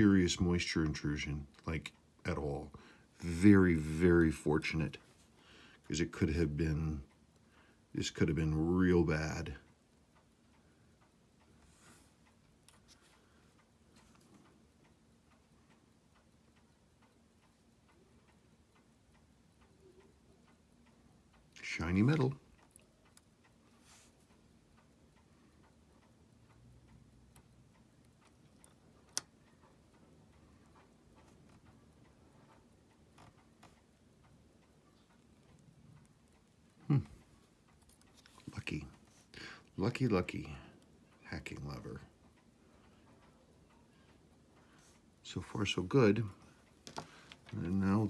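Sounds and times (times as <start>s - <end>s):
clock ticking: 0.0s - 48.0s
low steady hum: 0.0s - 48.0s
tweezers clicking on watch parts: 22.5s - 23.6s, 25.6s - 29.6s.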